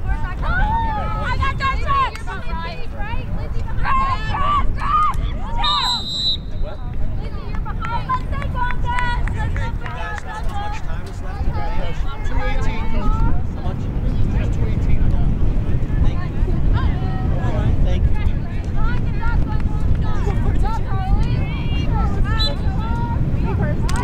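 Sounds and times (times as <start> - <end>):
steady low rumble: 0.0 - 24.0.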